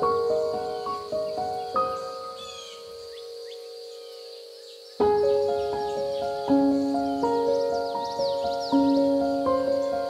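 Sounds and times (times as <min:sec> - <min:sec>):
faint bird chirps: 0:00.0 - 0:10.0
soft slow piano music: 0:00.0 - 0:10.0.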